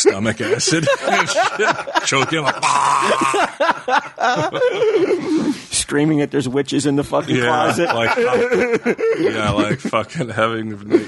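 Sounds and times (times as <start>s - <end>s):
man laughing: 0.0s - 5.4s, 7.4s - 10.3s
man wailing: 2.5s - 3.5s.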